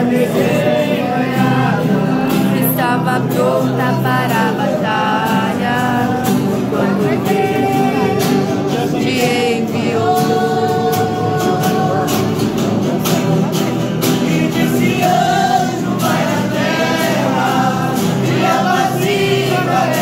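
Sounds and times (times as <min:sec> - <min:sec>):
group singing worship song: 0:00.0 - 0:20.0
strummed guitars: 0:00.0 - 0:20.0.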